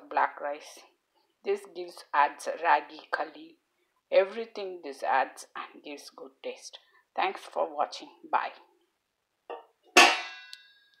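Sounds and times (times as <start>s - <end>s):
metallic clang of plate on pot: 9.5s - 10.7s.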